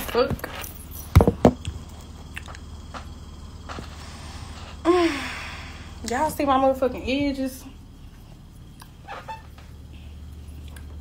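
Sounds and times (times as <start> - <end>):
low hum: 0.0 - 11.0
woman sighing: 4.8 - 5.9.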